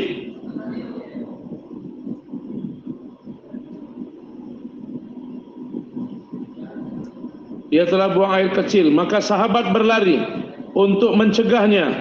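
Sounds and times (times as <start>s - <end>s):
man speaking over loudspeakers: 0.0s - 0.3s, 7.7s - 12.0s
low steady hum: 0.0s - 12.0s.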